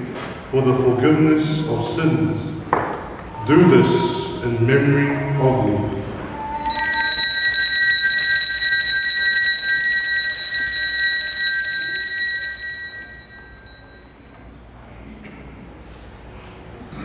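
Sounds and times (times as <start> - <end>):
altar bells ringing: 6.4 - 14.4.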